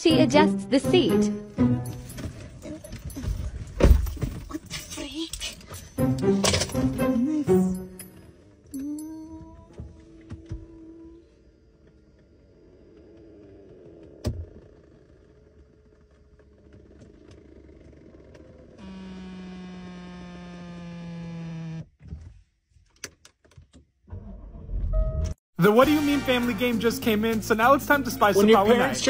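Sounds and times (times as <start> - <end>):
power seat motor whirring: 14.2 - 22.0.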